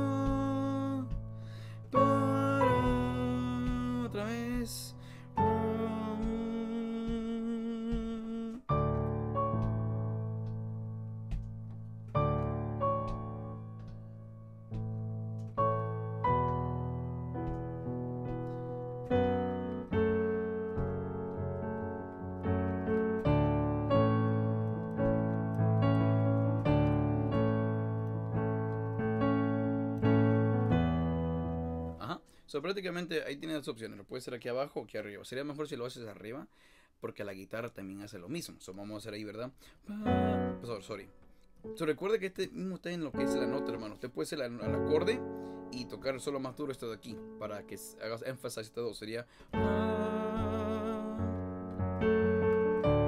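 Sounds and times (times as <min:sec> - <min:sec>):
digital piano chords and bass: 0:00.0 - 0:36.2, 0:37.6 - 0:53.0.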